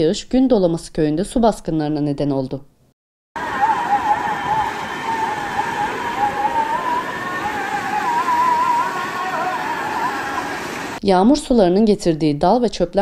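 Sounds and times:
wavering high-pitched tone: 0:03.4 - 0:10.6
floodwater rushing: 0:03.4 - 0:11.0.

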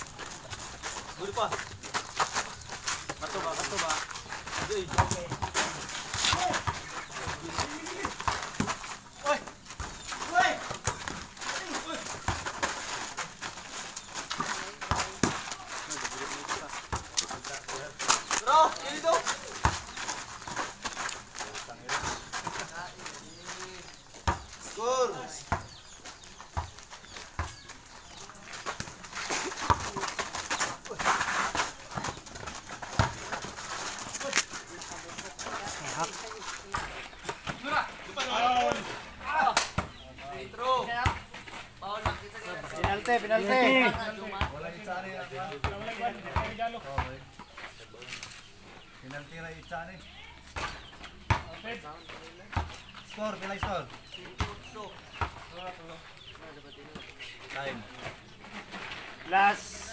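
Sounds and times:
footsteps on dirt court: 0:00.0 - 0:59.9
basketball bouncing: 0:04.5 - 0:09.0, 0:24.2 - 0:24.5, 0:26.5 - 0:27.6, 0:31.7 - 0:33.7, 0:50.5 - 0:51.6, 0:52.5 - 0:52.8, 0:53.5 - 0:55.4.

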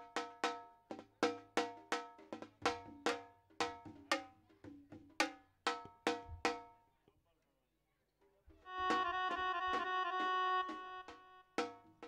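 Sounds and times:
held electronic keyboard note: 0:08.7 - 0:11.5.

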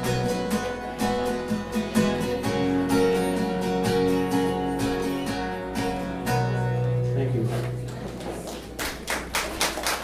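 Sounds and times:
acoustic guitar chord: 0:00.0 - 0:07.9
small audience clapping: 0:07.6 - 0:10.0.

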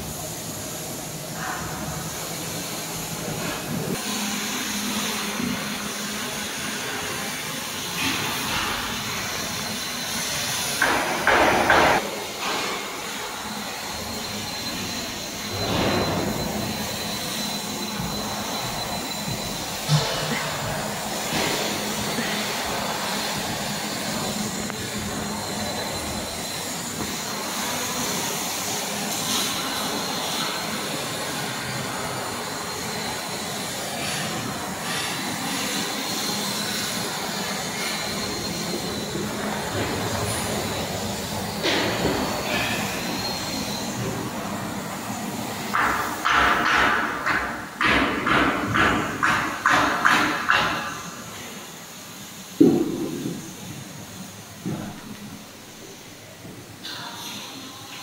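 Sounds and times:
factory workshop hissing noise: 0:00.0 - 0:58.0.

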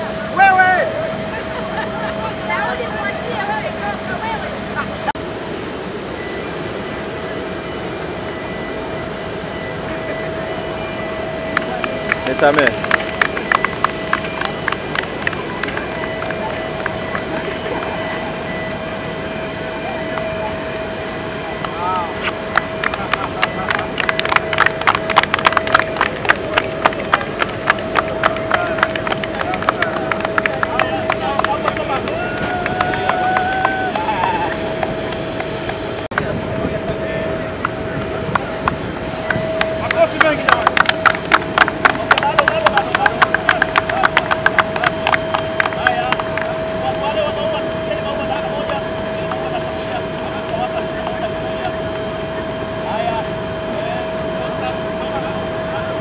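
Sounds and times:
people's voices: 0:00.0 - 0:05.2, 0:09.6 - 0:56.0
mechanical drone with high whine: 0:00.0 - 0:56.0
people clapping: 0:11.5 - 0:18.7, 0:19.8 - 0:20.5, 0:21.5 - 0:51.4.

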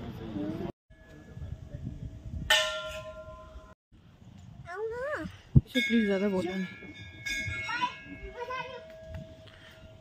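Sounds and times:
temple bell ringing: 0:05.7 - 0:10.0.

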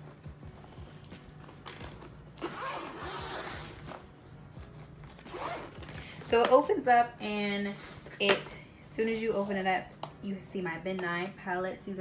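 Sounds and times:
zipper being pulled open: 0:01.8 - 0:04.1, 0:05.1 - 0:06.0.

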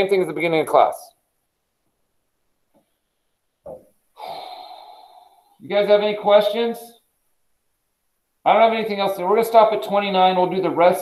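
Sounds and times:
person breathing: 0:04.2 - 0:05.6.

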